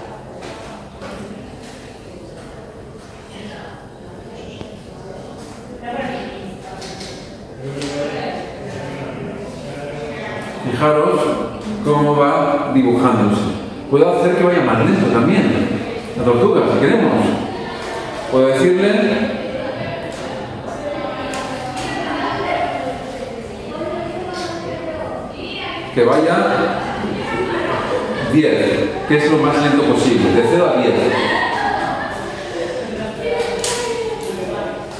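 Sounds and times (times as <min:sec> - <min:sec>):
person talking quietly in echoing hall: 0:00.0 - 0:34.9.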